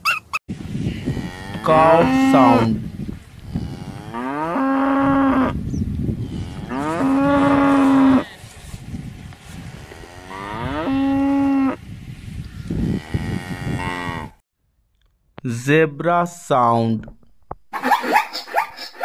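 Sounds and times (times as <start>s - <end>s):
cows mooing: 0.9s - 2.8s, 3.4s - 5.6s, 6.2s - 8.5s, 9.5s - 11.8s, 12.5s - 14.4s.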